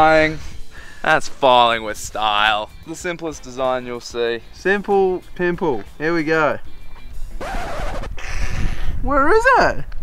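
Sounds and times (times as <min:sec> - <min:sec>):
wind buffeting microphone: 0:07.2 - 0:10.0.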